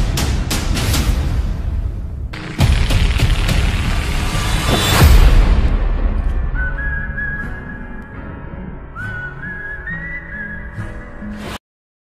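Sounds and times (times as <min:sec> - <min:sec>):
whistled melody: 0:06.2 - 0:11.5.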